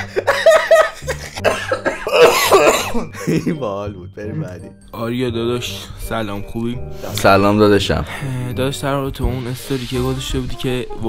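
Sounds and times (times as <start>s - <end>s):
man laughing hard: 0.0s - 3.7s.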